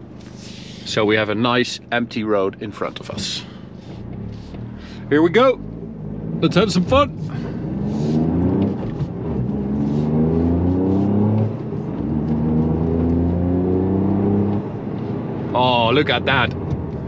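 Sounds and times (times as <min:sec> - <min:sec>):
car engine accelerating hard: 0:02.2 - 0:17.0.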